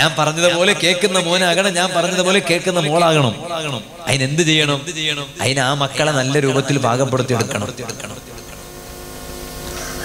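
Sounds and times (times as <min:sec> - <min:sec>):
steady low hum with held tones: 0:00.0 - 0:10.0.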